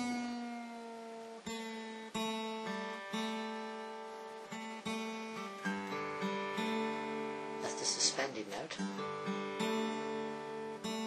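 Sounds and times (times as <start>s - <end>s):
acoustic guitar notes picked: 0.0s - 11.0s.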